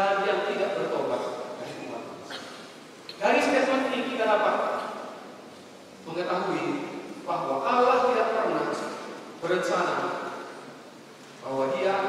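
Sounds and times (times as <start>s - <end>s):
man preaching over a microphone: 0.0s - 2.2s, 3.1s - 5.1s, 6.0s - 10.6s, 11.4s - 12.0s.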